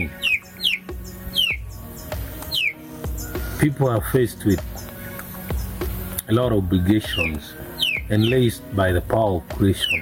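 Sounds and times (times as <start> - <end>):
bird whistling calls: 0.0 - 8.6, 9.7 - 10.0
soft background music: 0.0 - 10.0.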